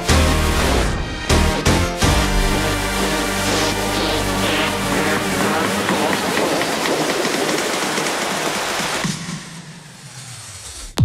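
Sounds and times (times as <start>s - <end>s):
car engines and tyres: 2.6s - 9.1s.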